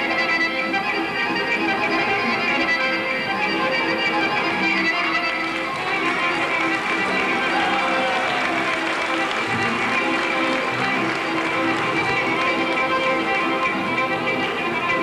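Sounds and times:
folk dance music: 0.0 - 15.0.

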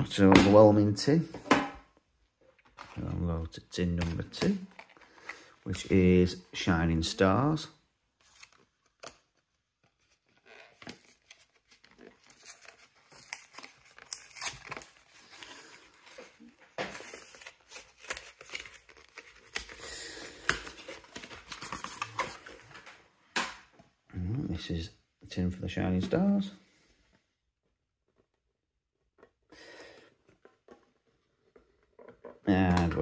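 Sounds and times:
packaging tearing and crinkling: 10.3 - 15.8, 16.9 - 22.7.

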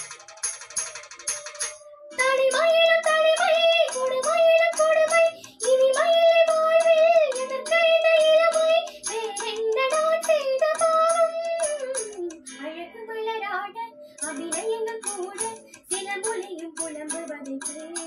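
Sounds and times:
steady light beat: 0.0 - 12.5
girl singing: 1.9 - 18.0.

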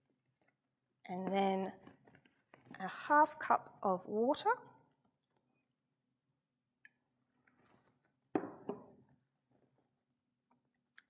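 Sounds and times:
glass jug knocking on table: 8.4 - 9.0.

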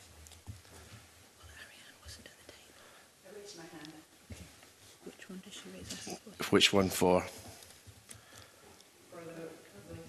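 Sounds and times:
rustling: 3.6 - 8.9.

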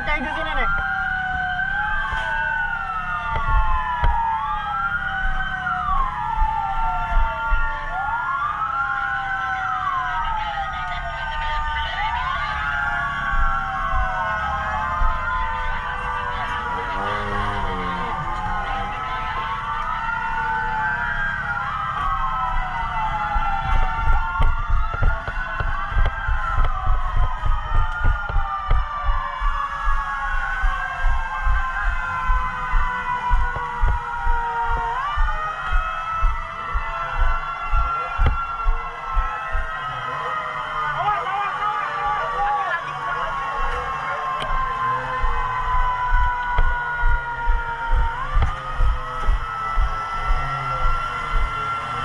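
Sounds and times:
sirens wailing: 0.0 - 52.0
dull low thumps: 5.0 - 8.0, 13.2 - 14.2, 22.0 - 39.8, 44.4 - 51.6.

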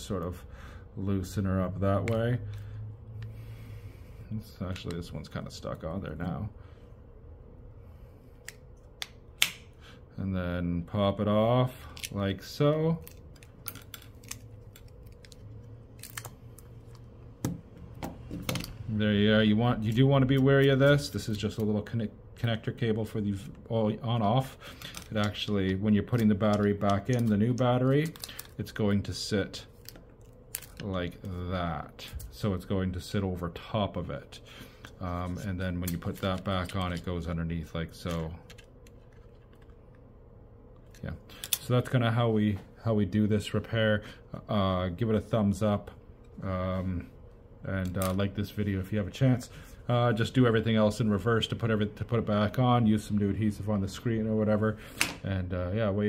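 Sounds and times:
faint steady hum: 0.0 - 56.0
light clicks of small parts: 40.7 - 41.8.

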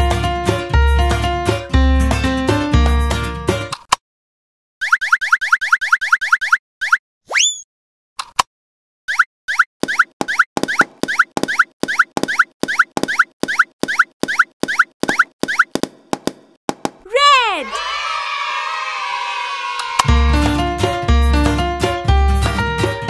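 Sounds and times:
cartoon pops: 6.8 - 7.6.

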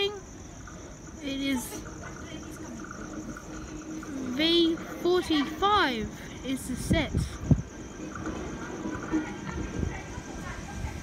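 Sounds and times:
electric train rumble: 0.0 - 11.0.

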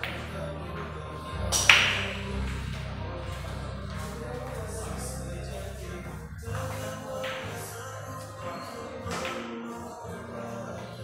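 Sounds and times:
pool balls clacking: 0.0 - 4.6, 6.5 - 9.8
background music: 0.0 - 11.0.

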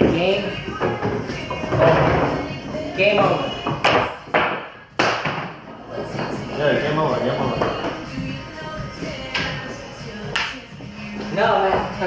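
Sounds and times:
pool balls clacking: 0.0 - 8.4.

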